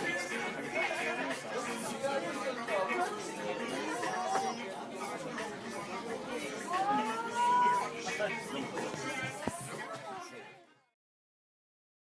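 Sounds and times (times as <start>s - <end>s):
people talking at once: 0.0s - 11.0s.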